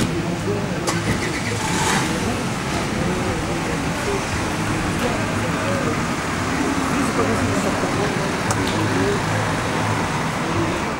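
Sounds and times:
people talking indistinctly: 0:00.0 - 0:10.9
street traffic: 0:00.0 - 0:10.9.

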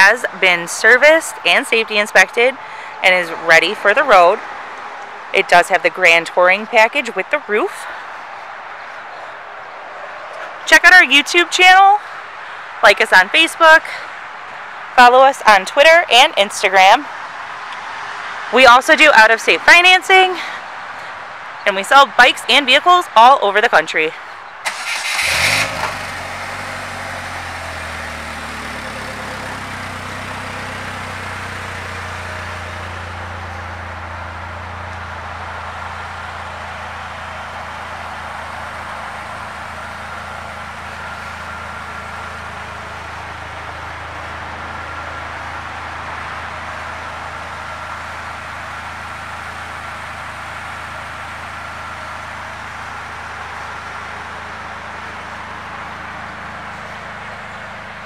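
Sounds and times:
car engine idling: 0:24.3 - 0:58.0.

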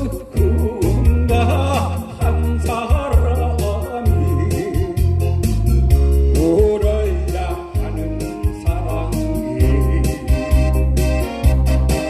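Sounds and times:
man singing into a microphone: 0:00.0 - 0:05.4, 0:06.1 - 0:11.0
bass: 0:00.0 - 0:12.0
electronic organ: 0:00.0 - 0:12.0
steady drum beat: 0:00.0 - 0:12.0.

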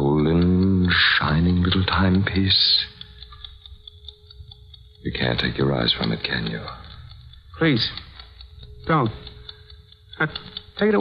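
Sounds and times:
thin steady hum: 0:00.0 - 0:11.0
watch ticking: 0:00.0 - 0:11.0.

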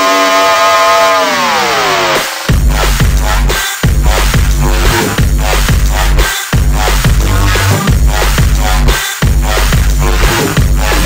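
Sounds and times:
electronic synth note sliding down: 0:06.8 - 0:08.3.

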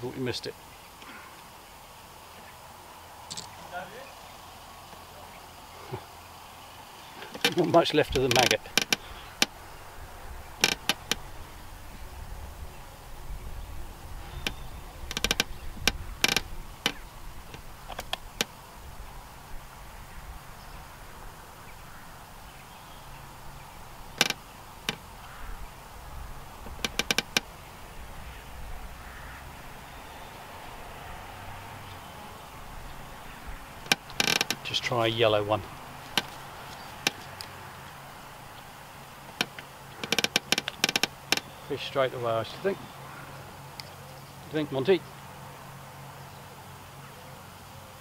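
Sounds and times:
wind rumble on microphone: 0:08.0 - 0:34.2.

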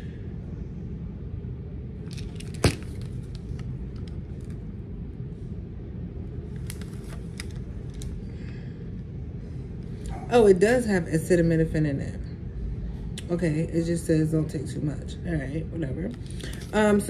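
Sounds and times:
steady low hum: 0:00.0 - 0:17.0.

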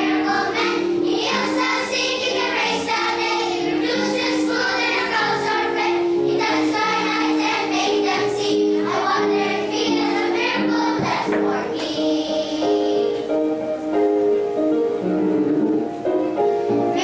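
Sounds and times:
children's choir singing: 0:00.0 - 0:13.8, 0:16.7 - 0:17.0.

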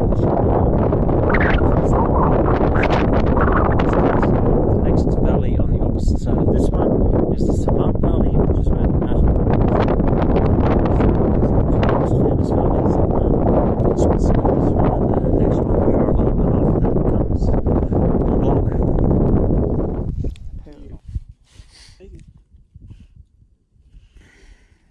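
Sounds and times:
wind buffeting microphone: 0:00.0 - 0:24.9.

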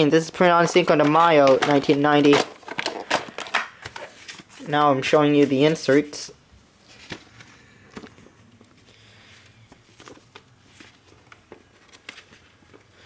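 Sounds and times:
paper rustling: 0:00.4 - 0:06.2, 0:06.8 - 0:13.0.

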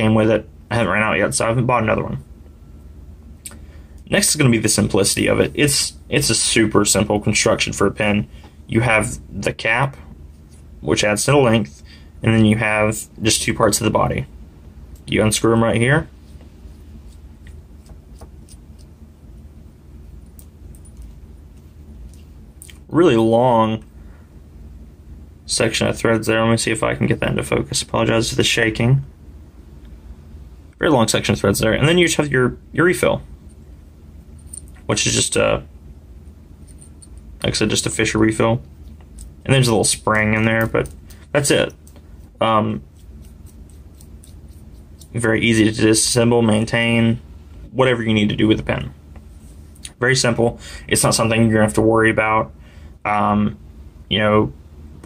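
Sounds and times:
low steady hum: 0:00.0 - 0:55.0
metal pen parts ticking and rubbing: 0:17.1 - 0:19.0, 0:38.8 - 0:39.6, 0:40.5 - 0:45.7.

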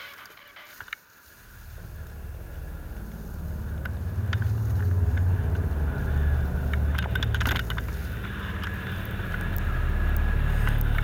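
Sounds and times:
board hissing over snow: 0:00.0 - 0:03.6
faint ticks: 0:00.7 - 0:11.0
wind buffeting microphone: 0:01.4 - 0:11.0.

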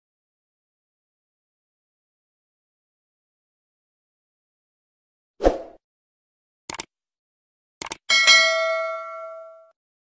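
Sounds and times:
double mouse click: 0:07.8 - 0:08.0
notification bell chime: 0:08.1 - 0:09.7.

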